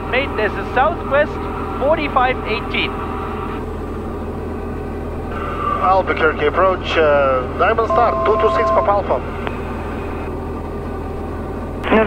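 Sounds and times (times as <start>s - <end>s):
airplane engine droning in cabin: 0.0s - 12.0s.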